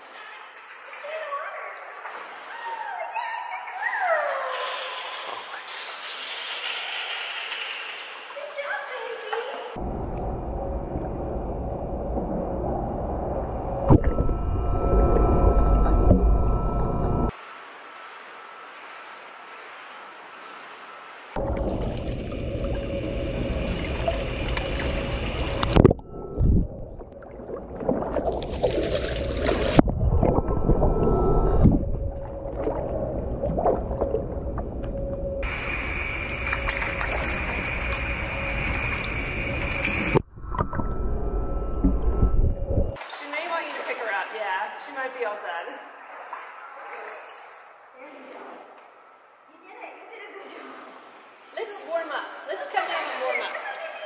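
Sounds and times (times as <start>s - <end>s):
water sloshing and splashing: 0.0s - 41.0s, 41.7s - 49.0s
steady hum: 9.8s - 17.3s, 21.4s - 43.0s.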